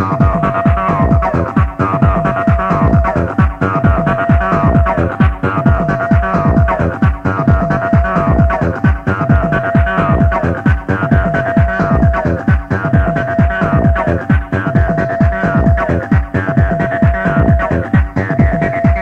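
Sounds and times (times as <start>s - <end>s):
kick-drum beat: 0.0s - 19.0s.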